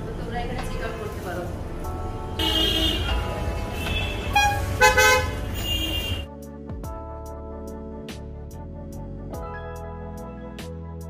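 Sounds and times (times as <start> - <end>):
street traffic rumbling: 0.0 - 6.3
car horn honks: 2.4 - 6.3.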